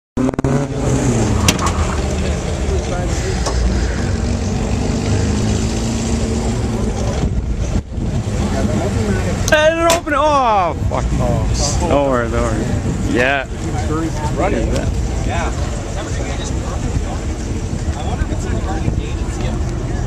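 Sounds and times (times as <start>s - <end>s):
car engine rumbling: 0.2s - 20.0s.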